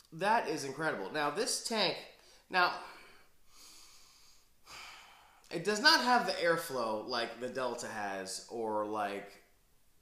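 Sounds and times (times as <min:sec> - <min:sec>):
man breathing through nose: 0:02.2 - 0:05.5.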